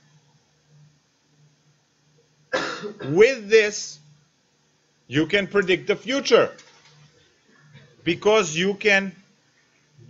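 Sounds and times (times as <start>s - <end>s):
faint low hum: 0.0s - 10.0s
man coughing: 2.5s - 3.3s.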